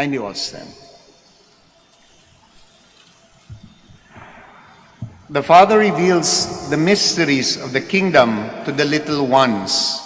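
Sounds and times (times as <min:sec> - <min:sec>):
low steady hiss: 0:00.0 - 0:10.0
soft low thuds: 0:05.0 - 0:05.3.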